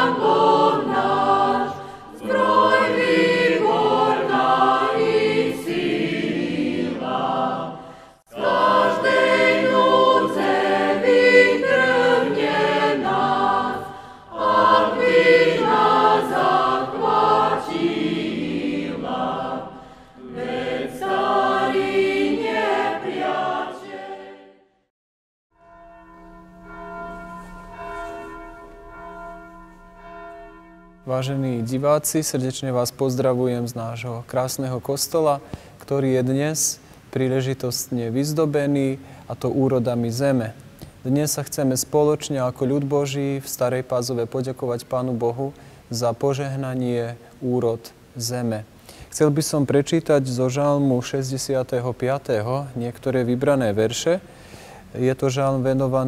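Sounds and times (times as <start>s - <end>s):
group of voices singing a hymn: 0.0s - 24.7s.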